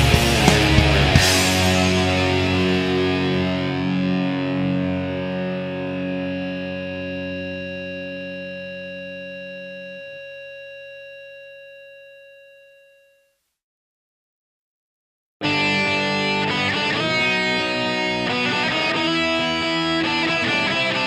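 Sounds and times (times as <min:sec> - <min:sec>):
distorted electric guitar chord: 0:00.0 - 0:10.7, 0:15.4 - 0:21.0.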